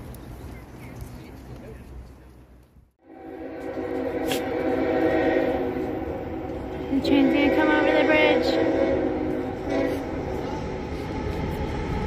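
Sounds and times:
train on bridge: 0.0 - 12.0.

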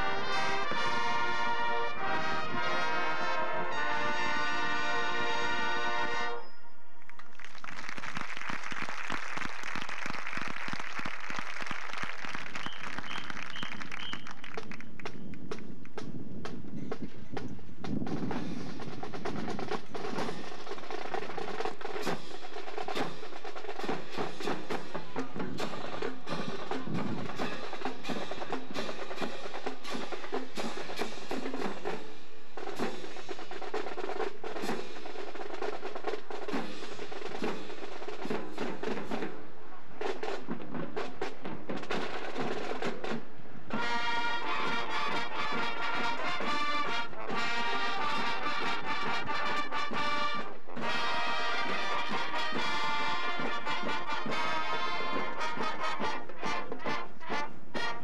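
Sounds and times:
drumline rolls: 0.0 - 6.4, 7.2 - 58.0
wind instruments holding chord: 0.0 - 6.4.

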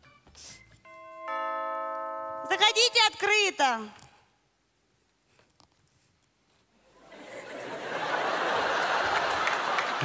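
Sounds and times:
doorbell two-note ding-dong: 0.9 - 2.7.

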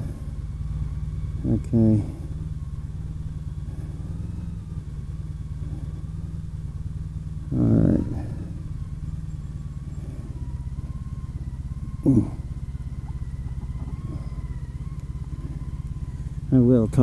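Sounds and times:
motorcycle engine low rumble: 0.0 - 17.0.

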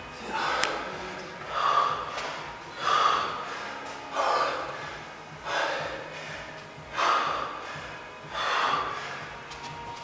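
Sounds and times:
man breathing hard: 0.2 - 0.8, 1.4 - 9.6.

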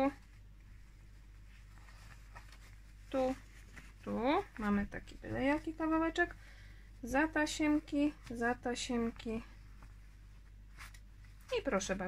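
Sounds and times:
fabric rustling: 0.0 - 12.0
low steady hum: 0.0 - 12.0
soft brushes: 0.0 - 12.0.

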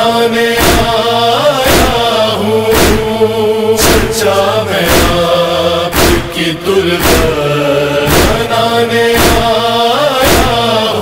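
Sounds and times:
male chorus chanting: 0.0 - 11.0
steady thumps: 0.6 - 3.2, 3.8 - 10.7.

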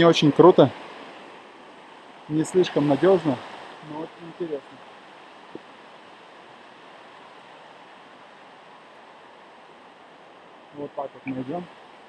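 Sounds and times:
stream running over rocks: 0.0 - 12.0.

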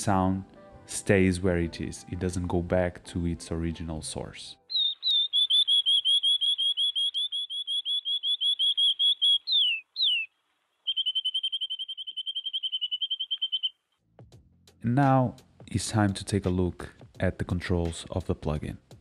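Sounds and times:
canary singing: 4.7 - 13.8.

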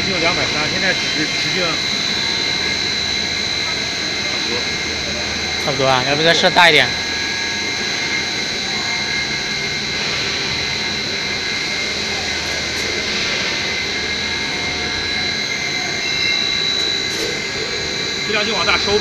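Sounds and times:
high steady machine tone: 0.0 - 19.0
machine whirring: 0.0 - 19.0.

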